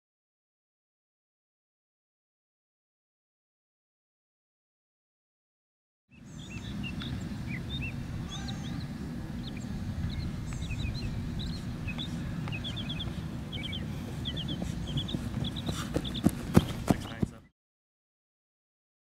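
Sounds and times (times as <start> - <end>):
steady low rumble: 6.2 - 17.4.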